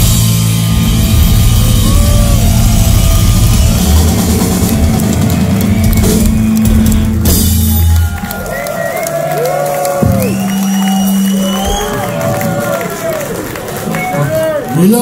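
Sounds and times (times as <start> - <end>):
punk rock band playing live: 0.0 - 8.5
crowd shouting: 1.2 - 6.6, 7.6 - 15.0.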